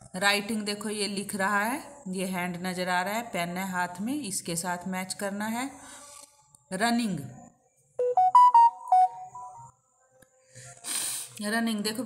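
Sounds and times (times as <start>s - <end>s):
phone beeping melody: 8.0s - 9.7s.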